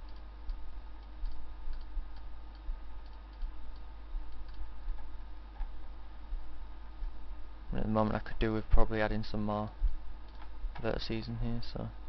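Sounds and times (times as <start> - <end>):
computer mouse clicks: 0.0 - 5.8, 10.2 - 10.9
low electrical hum: 0.0 - 12.0.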